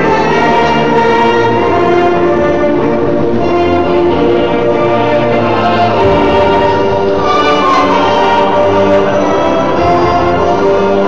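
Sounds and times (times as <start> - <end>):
orchestral music with held chords: 0.0 - 11.0.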